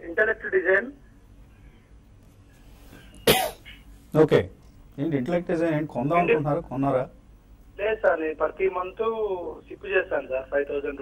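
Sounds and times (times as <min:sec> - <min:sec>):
person coughing: 0:03.2 - 0:03.9.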